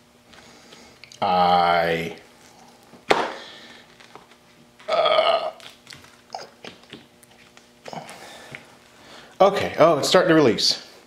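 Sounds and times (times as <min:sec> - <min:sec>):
sharp pop: 0:03.1 - 0:03.4.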